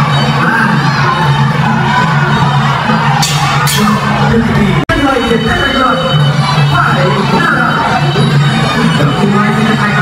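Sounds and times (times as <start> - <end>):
crowd shouting and cheering: 0.0 - 10.0
fight music playing: 0.8 - 10.0.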